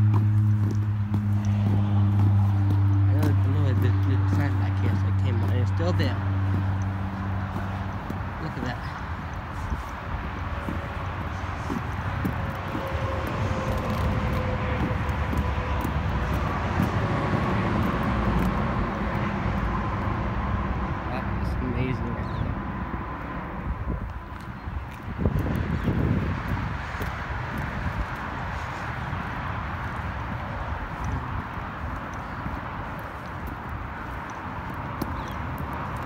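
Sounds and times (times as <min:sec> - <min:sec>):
distant engine drone: 0:00.0 - 0:36.0
footsteps on asphalt: 0:00.0 - 0:36.0
wind on microphone: 0:22.4 - 0:36.0.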